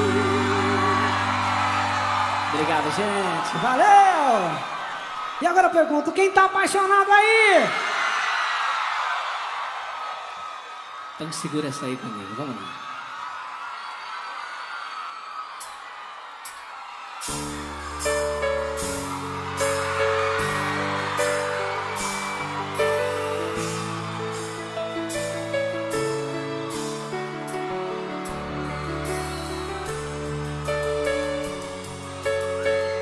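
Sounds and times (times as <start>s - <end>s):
live band sustained chord: 0.0s - 3.0s
keyboard chords: 0.0s - 3.4s, 17.3s - 33.0s
bass: 0.0s - 3.6s, 17.3s - 33.0s.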